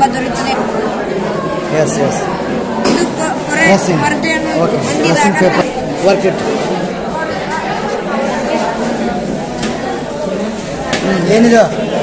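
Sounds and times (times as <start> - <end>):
overlapping voices echoing in a hall: 0.0 - 12.0.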